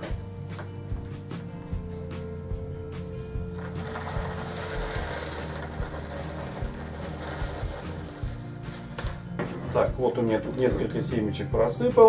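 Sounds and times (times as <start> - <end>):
background music: 0.0 - 12.0
seeds rattling into plastic bag: 3.6 - 8.8.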